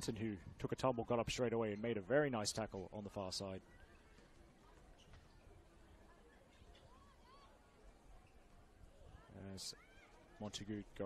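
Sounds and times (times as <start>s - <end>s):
open-air ambience: 0.0s - 11.0s.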